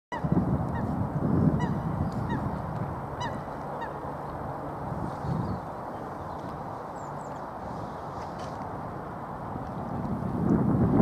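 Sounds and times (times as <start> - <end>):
waterbirds honking: 0.1 - 8.5
low uneven rumble: 0.3 - 11.0.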